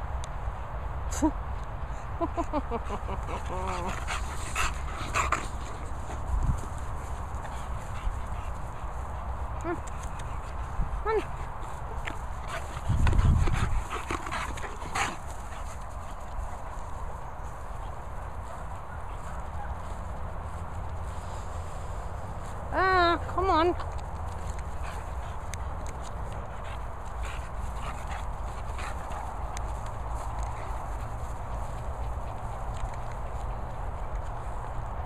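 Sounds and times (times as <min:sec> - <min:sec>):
dogs scuffling: 0:03.5 - 0:21.1.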